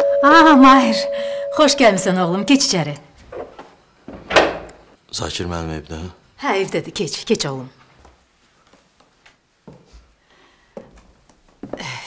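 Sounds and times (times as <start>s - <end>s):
door shutting thud: 4.1s - 4.8s.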